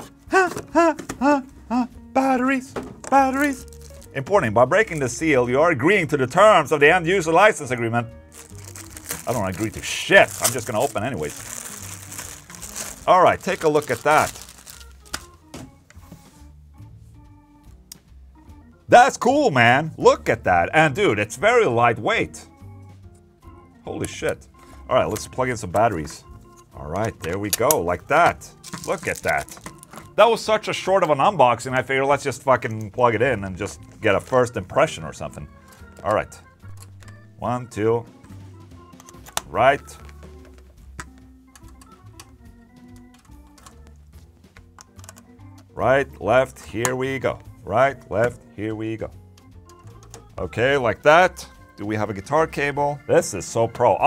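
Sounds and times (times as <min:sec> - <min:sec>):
quiet background music: 0:00.0 - 0:54.0.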